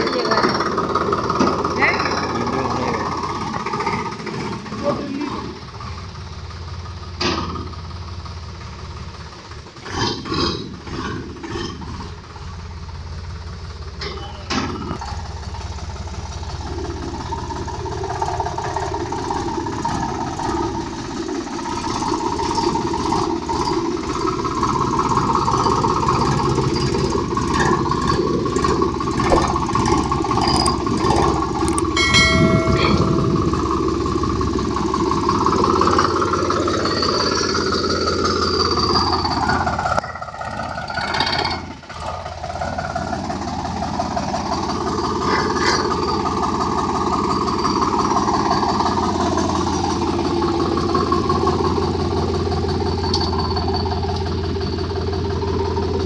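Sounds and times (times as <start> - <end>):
tractor diesel engine running: 0.0 - 56.0
brief electronic chime: 31.9 - 33.7.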